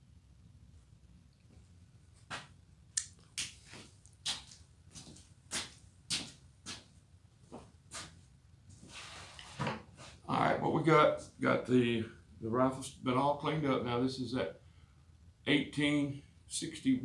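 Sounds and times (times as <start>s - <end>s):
footsteps on workshop floor: 2.2s - 2.6s, 3.4s - 10.2s.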